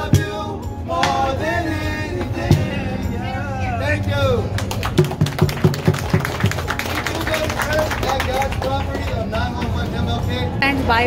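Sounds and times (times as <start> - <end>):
sharp rhythmic beats: 0.0 - 3.4, 4.4 - 10.4.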